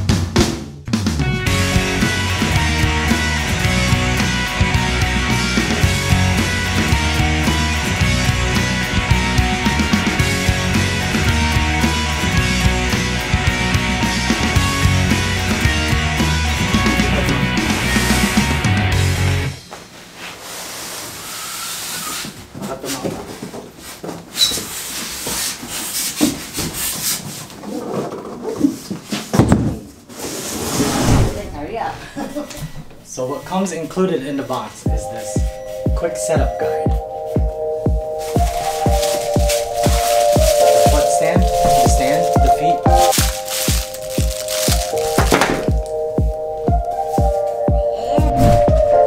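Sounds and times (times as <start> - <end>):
cardboard and foam scraping: 30.1 - 31.6, 38.2 - 45.9
laughter: 32.0 - 32.7
music with kick drum beat: 34.9 - 49.0
plastic packaging rustle: 38.2 - 46.0.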